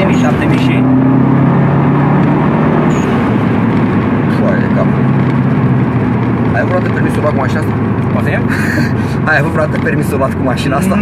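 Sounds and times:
car engine drone in cabin: 0.0 - 11.0
tyre and road noise: 0.0 - 11.0.

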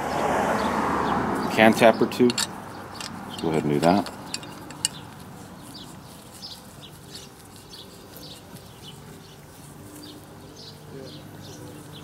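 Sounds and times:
bird calls: 0.6 - 12.0
metallic clicks of hose fitting: 2.3 - 5.1.

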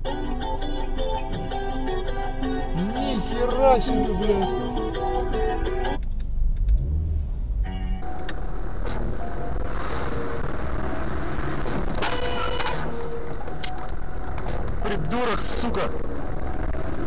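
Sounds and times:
car road and engine noise: 0.0 - 17.0.

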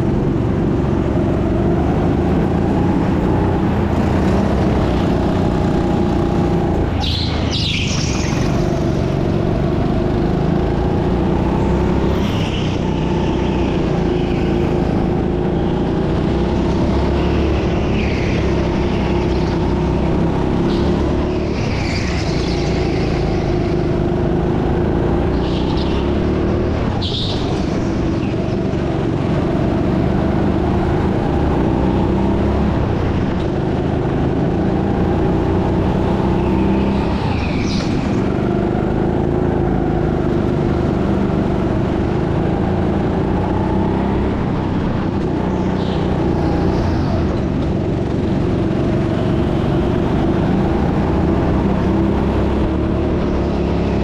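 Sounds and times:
kart petrol engine running: 0.0 - 54.0.

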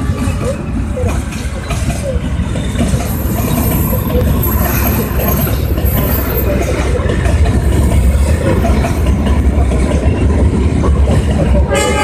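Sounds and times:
train rumbling over rails: 0.0 - 12.0
train horn: 11.6 - 12.0.

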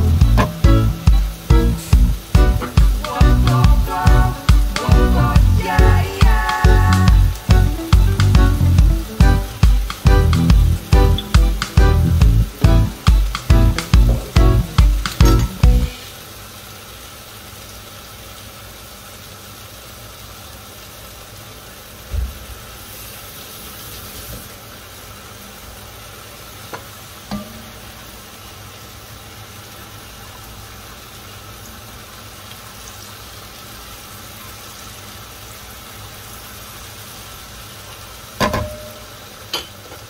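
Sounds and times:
onions sizzling in hot oil: 0.0 - 40.0.

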